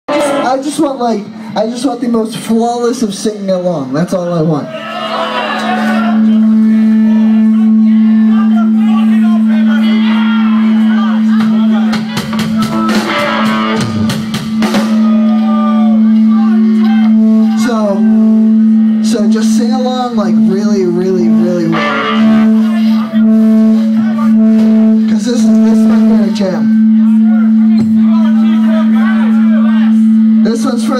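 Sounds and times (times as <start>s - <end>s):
electric guitars playing: 0.1s - 0.9s, 5.3s - 30.9s
voices shouting along: 4.6s - 13.8s, 14.7s - 18.2s
held low tone: 6.1s - 11.9s, 14.5s - 30.9s.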